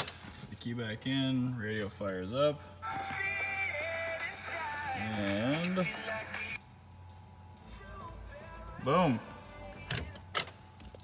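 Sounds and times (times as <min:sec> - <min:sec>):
faint music from car stereo: 0:00.2 - 0:11.0.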